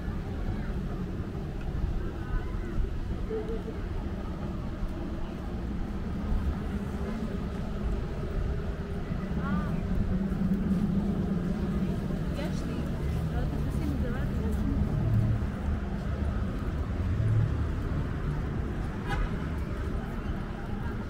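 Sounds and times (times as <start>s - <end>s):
faint voices of passers-by: 0.0s - 21.0s
low street rumble: 0.0s - 21.0s.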